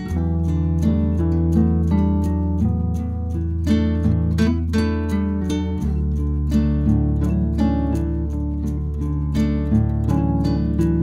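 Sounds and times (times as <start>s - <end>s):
picked guitar-like notes: 0.0s - 11.0s.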